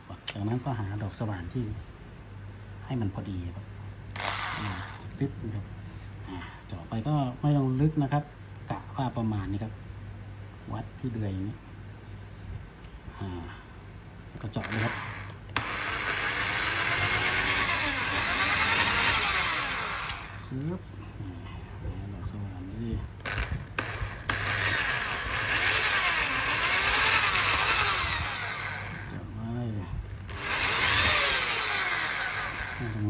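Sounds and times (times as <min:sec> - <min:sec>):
electric drill whirring: 0:04.1 - 0:05.2, 0:14.6 - 0:20.5, 0:23.2 - 0:29.2, 0:30.1 - 0:33.0.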